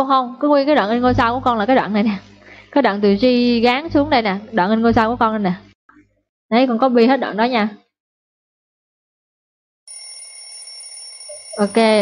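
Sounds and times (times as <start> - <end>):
person speaking: 0.9 - 5.7, 11.3 - 12.0
high-pitched electronic alarm tone: 11.2 - 12.0.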